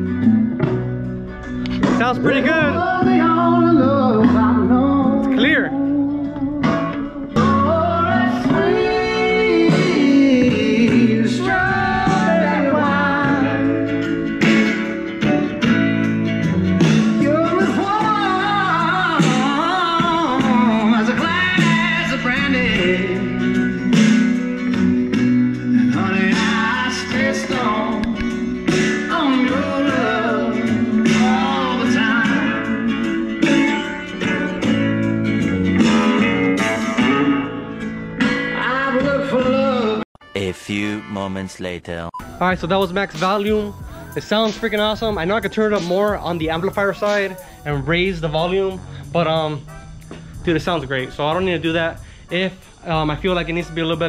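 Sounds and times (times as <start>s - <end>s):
guitar playing: 0.0s - 52.2s
male singer: 1.8s - 14.1s, 17.1s - 24.4s, 25.7s - 33.9s, 38.4s - 41.2s.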